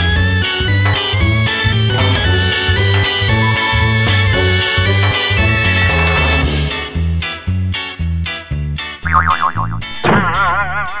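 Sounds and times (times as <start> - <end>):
bouncy background music: 0.0 - 7.4
boing-like cartoon tone: 9.0 - 11.0
cartoon downward swoop and warble: 9.1 - 11.0.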